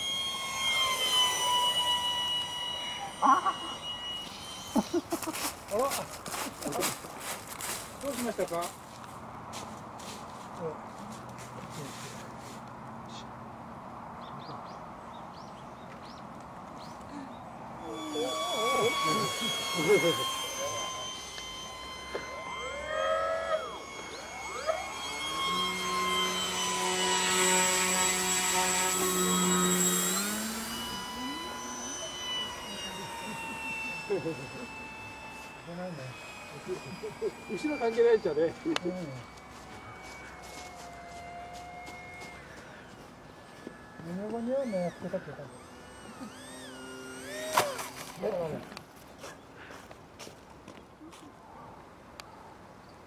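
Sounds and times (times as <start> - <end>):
low motor note: 0.0 - 7.0, 17.6 - 48.6
model aircraft high whine: 0.0 - 14.4, 15.0 - 53.0.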